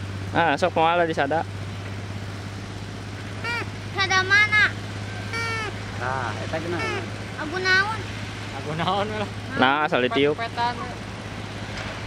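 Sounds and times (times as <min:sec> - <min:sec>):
steady low hum: 0:00.0 - 0:12.0
child speaking: 0:03.4 - 0:05.8, 0:06.8 - 0:08.1.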